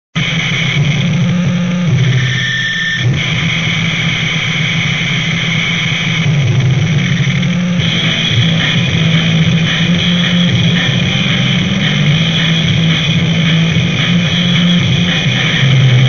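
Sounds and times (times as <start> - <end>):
wall of distorted noise: 0.2 - 16.0.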